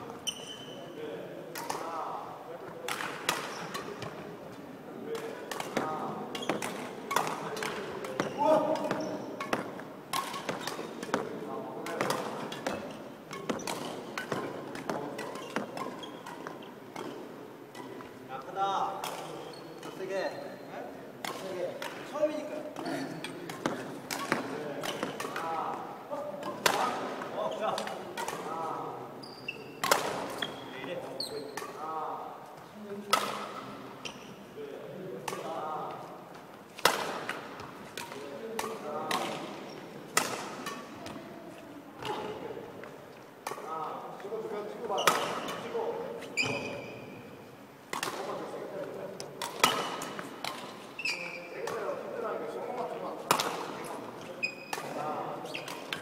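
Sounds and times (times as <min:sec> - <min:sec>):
badminton rackets striking shuttlecocks: 0:01.5 - 0:02.0, 0:02.7 - 0:04.2, 0:05.1 - 0:20.1, 0:21.2 - 0:32.1, 0:33.0 - 0:34.3, 0:35.2 - 0:41.4, 0:42.0 - 0:46.8, 0:47.9 - 0:56.0.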